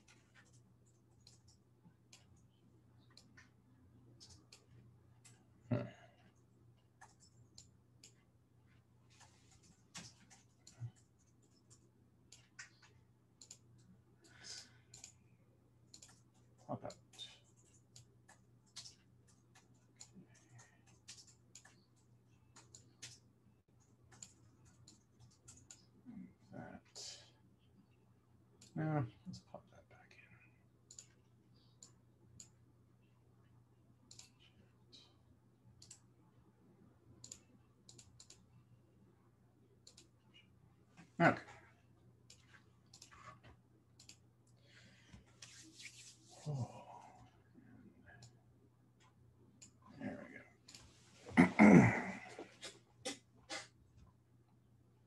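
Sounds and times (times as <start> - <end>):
computer mouse clicking: 0.0 - 5.4, 6.9 - 8.3, 9.1 - 15.2, 15.8 - 25.9, 30.8 - 32.6, 34.1 - 34.5, 35.7 - 36.1, 37.2 - 38.6, 39.8 - 40.4, 42.2 - 44.6.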